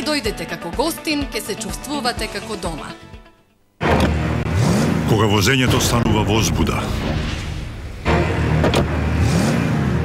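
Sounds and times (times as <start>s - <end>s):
car engine revving: 3.8s - 10.0s.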